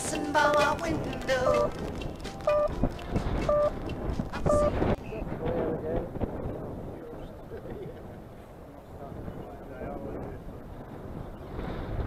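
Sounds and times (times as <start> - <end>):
wind buffeting microphone: 0.0 - 12.0
short electronic beep: 2.5 - 2.8, 3.4 - 3.8, 4.5 - 4.8.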